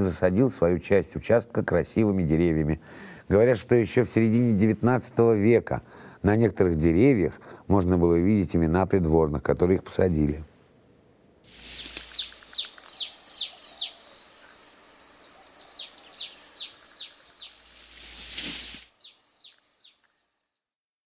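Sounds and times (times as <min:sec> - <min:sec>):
faint hiss: 0:09.9 - 0:20.2
bird chirping: 0:11.6 - 0:20.6.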